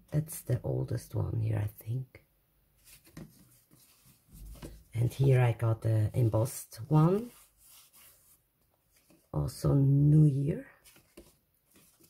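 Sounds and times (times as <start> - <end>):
paper postcards being shuffled: 2.8 - 5.0, 6.2 - 9.4, 10.7 - 12.0.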